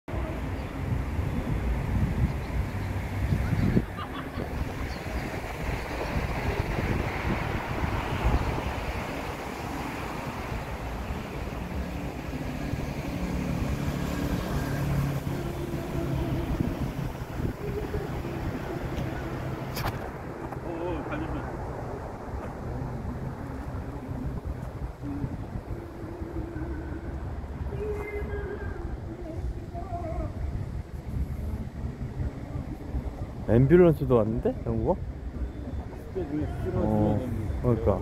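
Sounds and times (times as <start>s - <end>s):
street and traffic noise: 0.1s - 38.0s
wind buffeting microphone: 0.1s - 38.0s.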